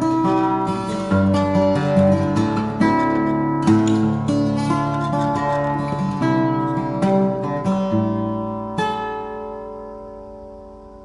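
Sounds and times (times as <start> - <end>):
acoustic guitar fingerpicking: 0.0 - 11.0.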